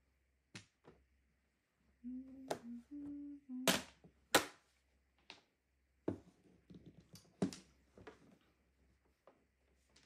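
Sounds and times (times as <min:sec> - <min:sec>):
person humming a tune: 0:02.0 - 0:03.8.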